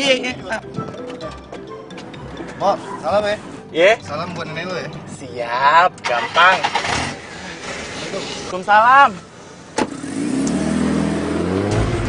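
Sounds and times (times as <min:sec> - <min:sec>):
car engine humming: 0:01.3 - 0:12.0
car door slamming: 0:09.7 - 0:10.0.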